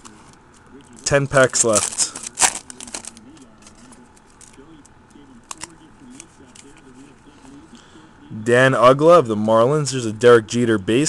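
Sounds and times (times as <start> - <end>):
foil wrapper crinkling: 1.0 - 4.6.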